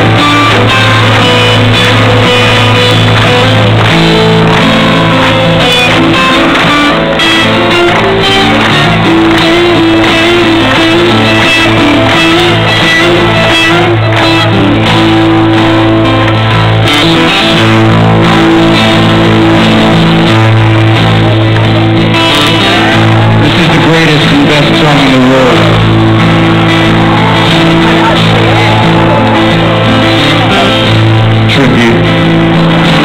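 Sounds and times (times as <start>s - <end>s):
acoustic guitar strumming chords: 0.0s - 33.0s.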